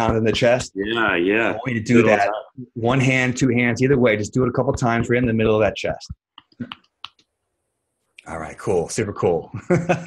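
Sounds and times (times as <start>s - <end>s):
fists tapping on chest: 3.8s - 7.2s.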